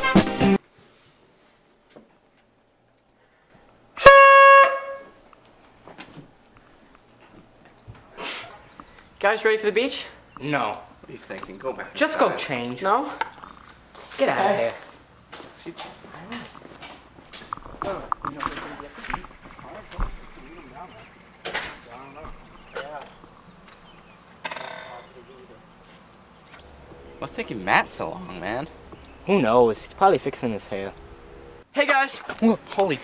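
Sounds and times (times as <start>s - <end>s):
horn blast: 4.0s - 5.2s.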